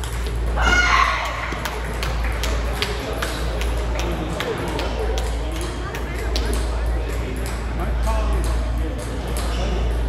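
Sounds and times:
table tennis balls clicking: 0.0s - 10.0s.

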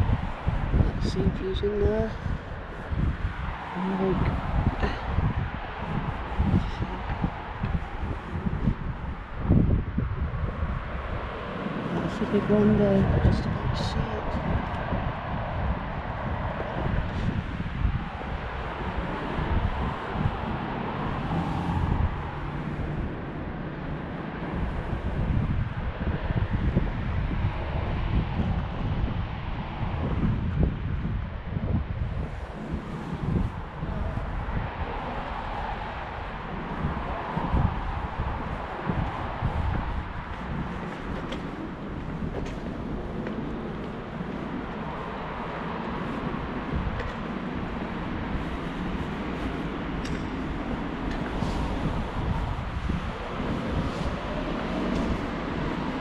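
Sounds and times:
passing road traffic: 0.0s - 56.0s
wind buffeting microphone: 0.0s - 56.0s.

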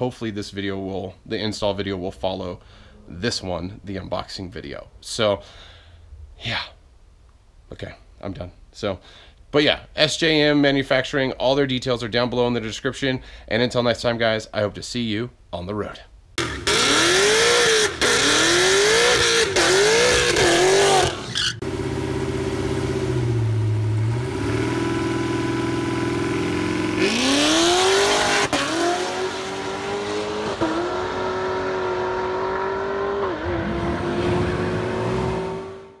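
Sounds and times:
car engine revving: 16.4s - 36.0s.

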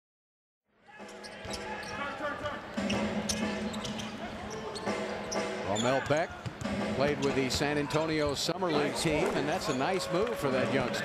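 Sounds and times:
crowd noise: 0.8s - 11.0s.

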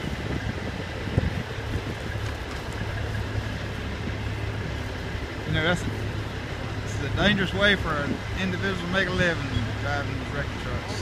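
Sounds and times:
diesel truck engines humming: 0.0s - 11.0s.

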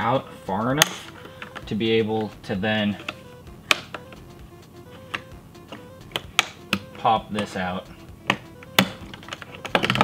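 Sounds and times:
faint background music: 0.0s - 10.0s
hard plastic clicks and taps: 0.8s - 2.4s, 3.0s - 4.2s, 5.1s - 7.5s, 8.2s - 10.0s.

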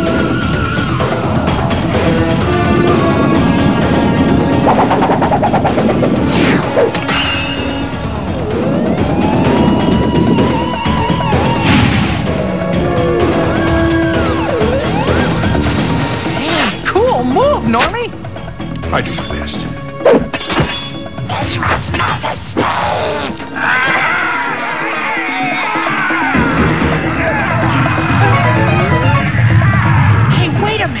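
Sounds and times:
dramatic background music: 0.0s - 31.0s
falling sweep: 2.6s - 12.4s.

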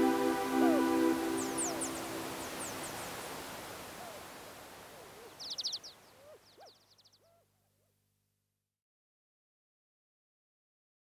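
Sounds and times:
bird-like chirps: 0.0s - 3.2s, 5.0s - 7.4s
rising and falling calls: 0.0s - 3.3s
soft wash of noise: 0.0s - 6.3s.

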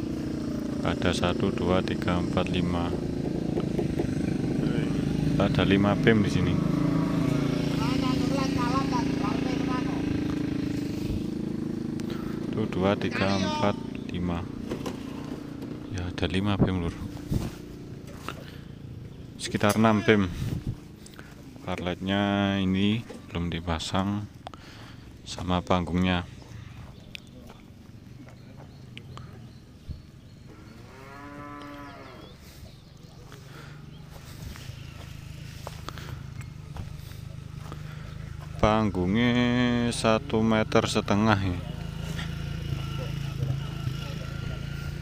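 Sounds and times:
engine running steadily: 0.0s - 30.6s, 32.3s - 45.0s
cow mooing: 30.6s - 32.4s.

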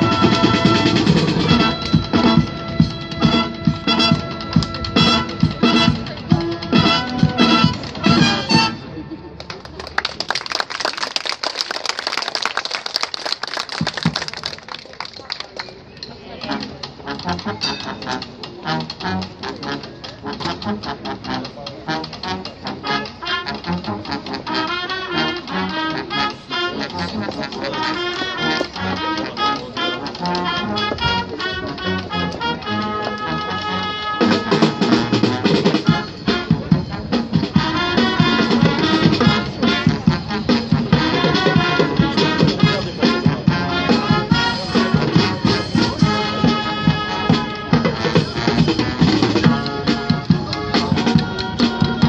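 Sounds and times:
marching brass band playing: 0.0s - 9.0s, 16.4s - 52.0s
spectators clapping: 9.4s - 15.8s.

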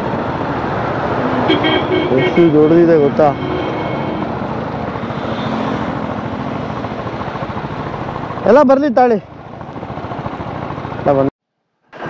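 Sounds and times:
motorcycle engine hum: 0.0s - 11.3s.

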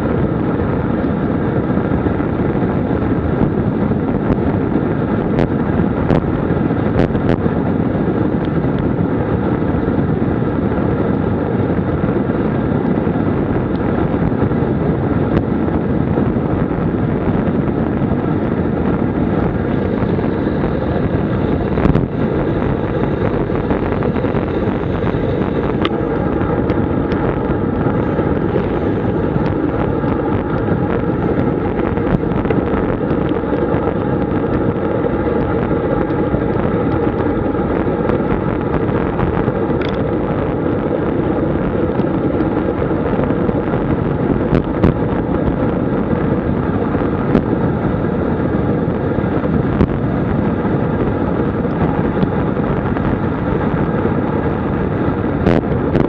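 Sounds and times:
bicycle tyre noise: 0.0s - 56.0s
wind rushing over microphone: 0.0s - 56.0s.

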